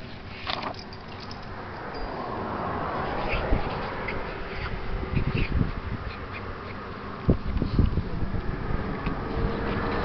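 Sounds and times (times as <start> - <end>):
wind buffeting microphone: 2.8 - 10.0.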